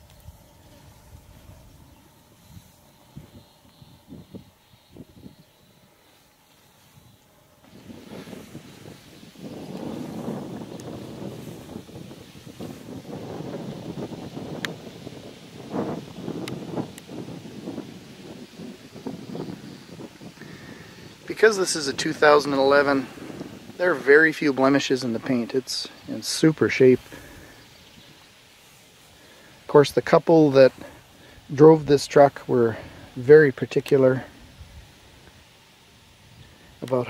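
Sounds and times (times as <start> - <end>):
wind buffeting microphone: 0.0 - 30.1.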